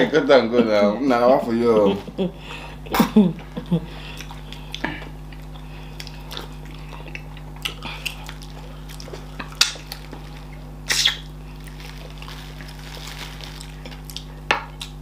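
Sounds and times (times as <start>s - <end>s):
steady low hum: 0.0s - 15.0s
wet eating sounds: 3.9s - 15.0s
lip and finger smacks: 10.9s - 11.3s.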